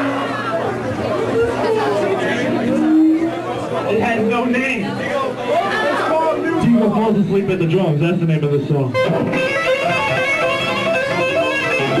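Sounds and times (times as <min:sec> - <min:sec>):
electric guitar playing single notes: 0:02.4 - 0:04.3, 0:07.6 - 0:12.0.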